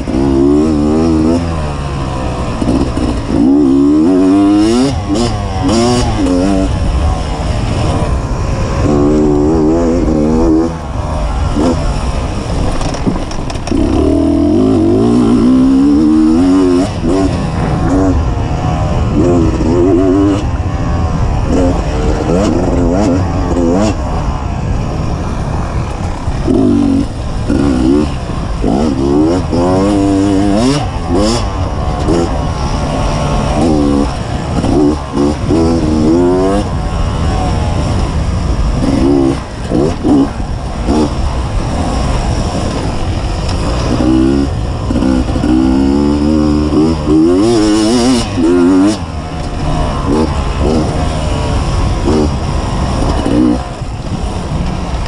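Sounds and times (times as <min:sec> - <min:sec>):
two-stroke motorcycle engine revving: 0:00.0 - 0:55.0.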